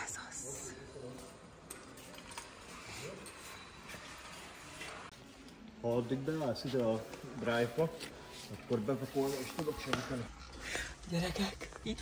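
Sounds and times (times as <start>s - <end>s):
indoor store ambience: 0.0s - 12.0s.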